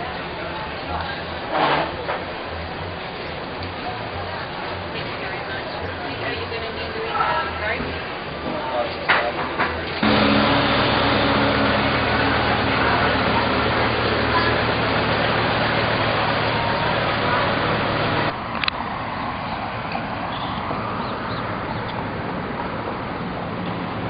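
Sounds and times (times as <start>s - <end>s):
traffic engine hum and road noise: 0.0s - 24.0s.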